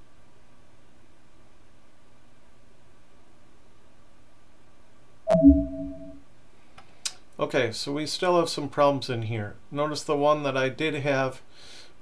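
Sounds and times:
two-tone computer alert chime: 5.3s - 6.2s.

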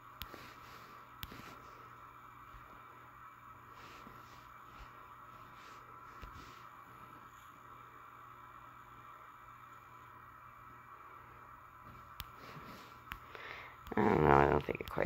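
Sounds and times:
steady low hum: 0.0s - 15.0s
soft clicks: 11.9s - 12.4s.

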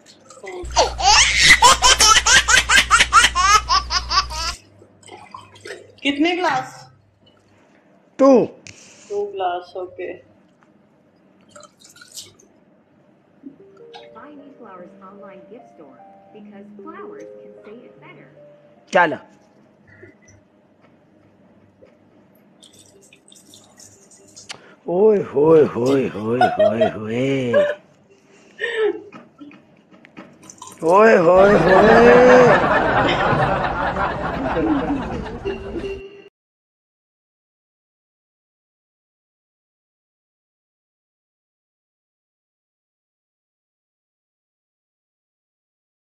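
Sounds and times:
steady low hum: 0.0s - 11.7s, 12.6s - 23.2s, 24.0s - 30.2s
high-pitched laughter: 0.6s - 4.6s, 31.3s - 33.4s
water splashing and dripping: 5.0s - 6.0s, 11.4s - 12.4s, 22.6s - 24.6s, 30.4s - 31.0s.

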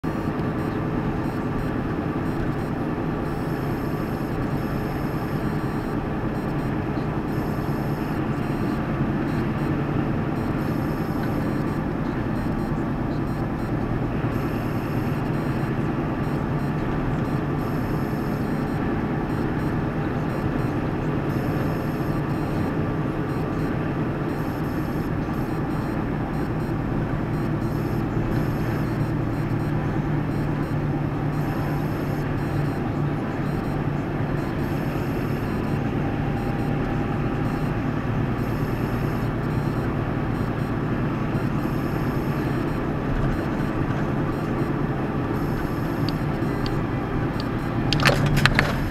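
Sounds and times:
engine drone: 0.0s - 48.9s
tyre and road noise: 0.0s - 48.9s.

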